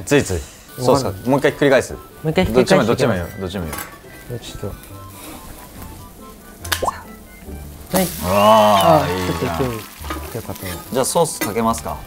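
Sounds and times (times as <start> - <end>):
pancake sizzling on griddle: 7.8 - 11.4.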